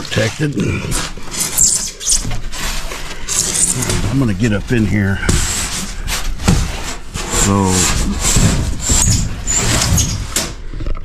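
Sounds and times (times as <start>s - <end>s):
foam boards scraping: 0.0s - 10.6s.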